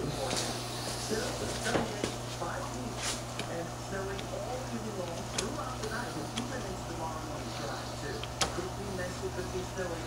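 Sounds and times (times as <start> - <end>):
faint background speech: 0.0 - 10.0
steady low hum: 0.0 - 10.0.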